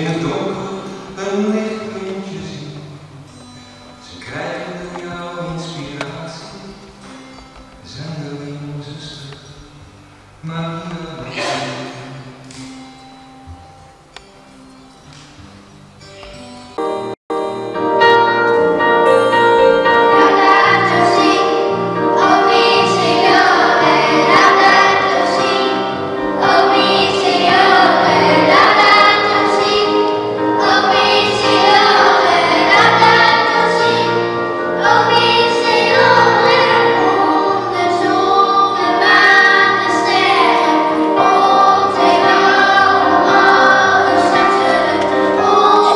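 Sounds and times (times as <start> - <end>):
choir singing: 18.0 - 45.9.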